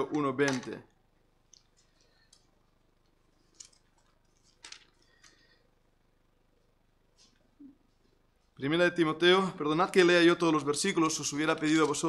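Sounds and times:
faint rustles and clicks: 1.5s - 5.6s.

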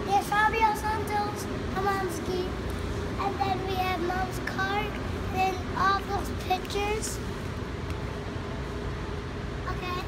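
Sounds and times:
young child's sing-song voice: 0.0s - 7.3s, 9.6s - 10.0s.

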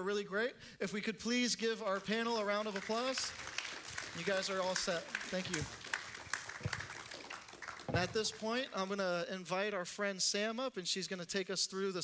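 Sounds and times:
audience applauding: 1.9s - 8.9s.

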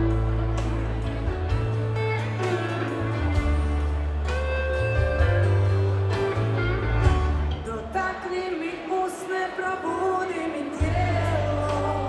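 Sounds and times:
live rock band playing: 0.0s - 8.9s, 10.6s - 12.0s.

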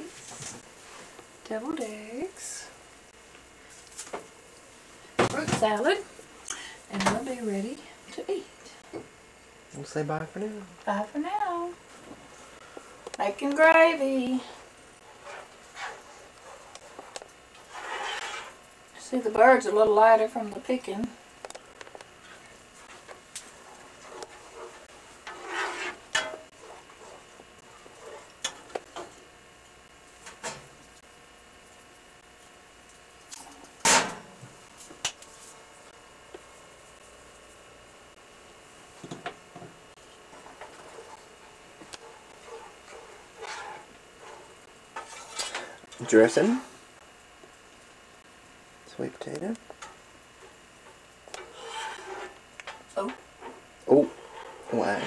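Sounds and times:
utensil scraping a pan: 15.1s - 17.0s, 17.6s - 18.6s, 23.6s - 28.6s, 42.0s - 45.8s, 51.3s - 52.4s, 53.4s - 55.0s
short rasping scrape: 17.7s - 18.6s, 25.3s - 26.0s, 51.4s - 52.4s.

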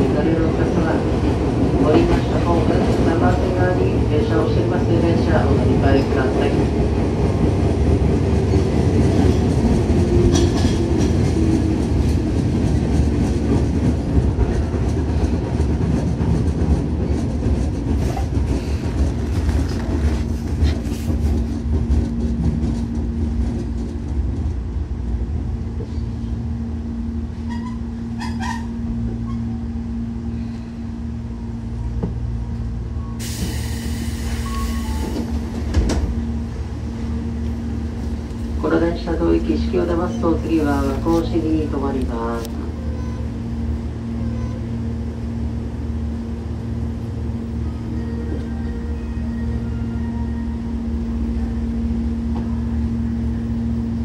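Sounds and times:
train wheel-on-rail rumble: 0.0s - 54.0s.

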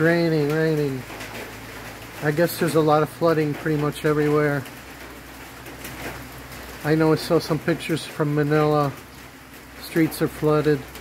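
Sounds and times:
rain falling: 0.0s - 11.0s.

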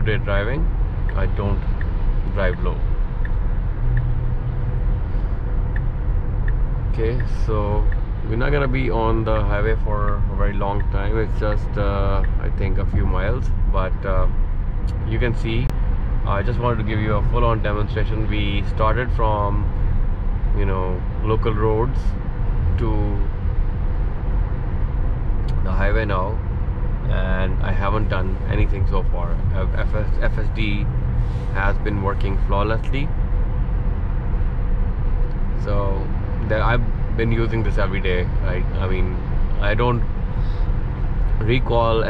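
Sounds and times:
road and tyre rumble in car cabin: 0.0s - 42.0s.

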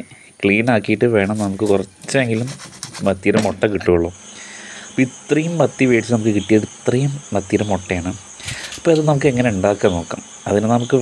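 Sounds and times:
person talking: 0.0s - 4.2s, 4.9s - 11.0s.

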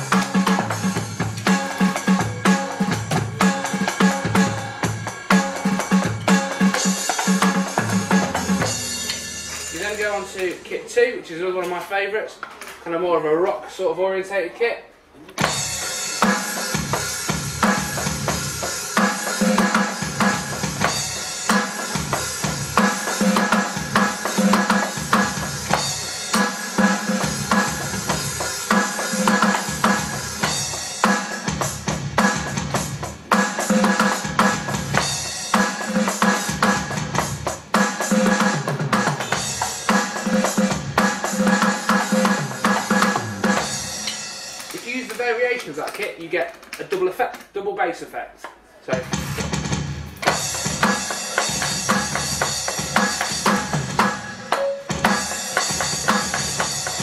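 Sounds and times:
electronic drum kit groove: 0.0s - 10.6s, 15.2s - 46.6s, 48.8s - 57.0s.

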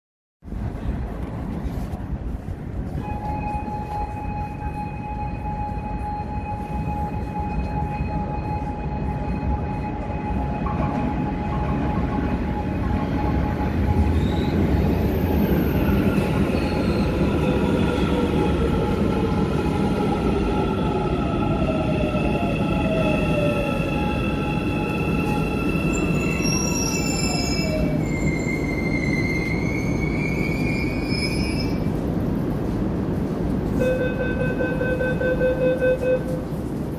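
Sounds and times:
train rumbling into station: 0.4s - 36.9s.

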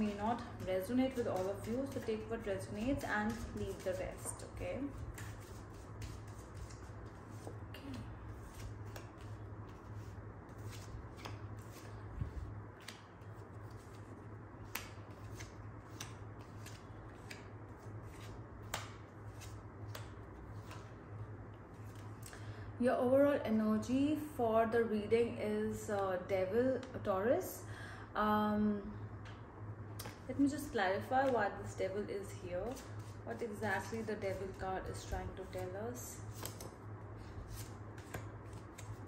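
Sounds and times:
cards shuffling and clicking: 0.0s - 20.9s, 30.0s - 30.3s, 32.7s - 33.2s, 33.8s - 39.0s
low steady hum: 0.0s - 39.0s.

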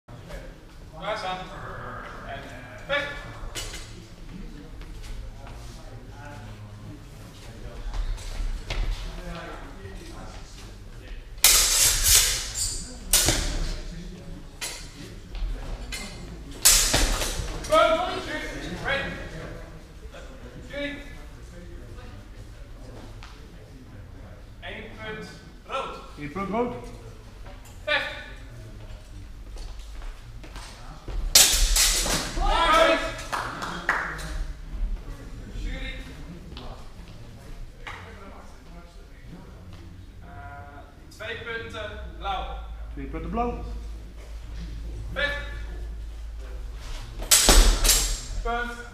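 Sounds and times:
swords clashing with echo: 11.4s - 13.8s, 16.0s - 17.6s, 31.3s - 32.8s, 47.2s - 48.5s.

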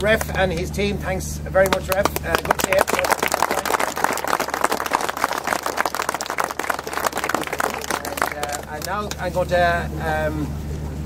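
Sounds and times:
group of people applauding: 0.0s - 0.5s, 1.6s - 9.4s.

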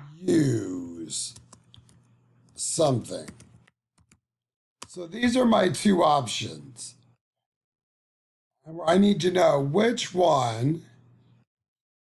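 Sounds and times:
man speaking: 0.2s - 1.5s, 2.6s - 3.4s, 4.8s - 7.1s, 8.7s - 11.0s
keyboard clicks: 3.2s - 4.2s.

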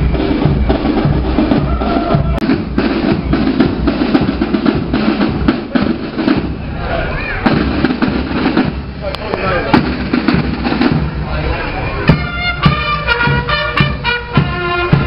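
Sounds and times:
marching side drums: 0.0s - 15.0s.

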